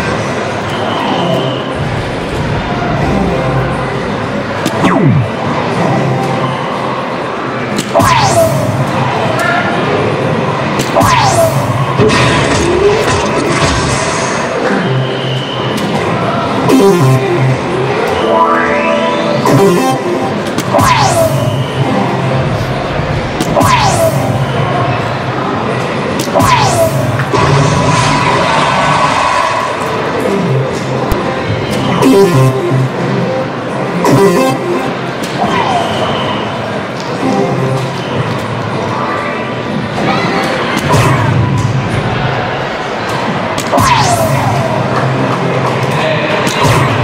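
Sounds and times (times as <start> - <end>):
crowd noise in hall: 0.0 - 47.0
dart machine electronic music: 4.6 - 6.4, 7.8 - 9.0, 16.6 - 22.4, 23.4 - 24.5, 30.4 - 33.1, 34.0 - 35.1
electronic swooshing effects: 16.7 - 24.9
falling whistle-like tone: 35.5 - 36.6.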